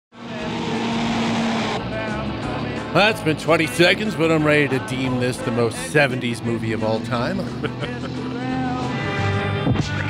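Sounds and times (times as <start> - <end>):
truck engine running: 0.1 - 10.0.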